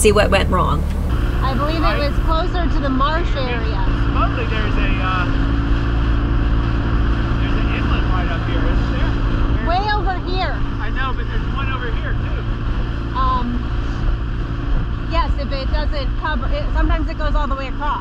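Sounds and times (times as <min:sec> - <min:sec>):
outboard motor humming: 0:00.0 - 0:17.0
wind: 0:08.9 - 0:18.0.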